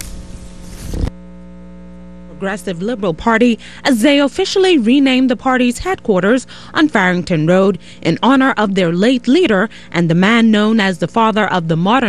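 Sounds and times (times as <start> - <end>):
electrical mains hum: 0.0 - 12.0.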